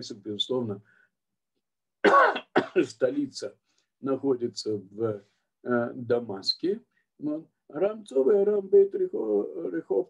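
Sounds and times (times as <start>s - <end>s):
man coughing and clearing throat: 2.0s - 3.1s.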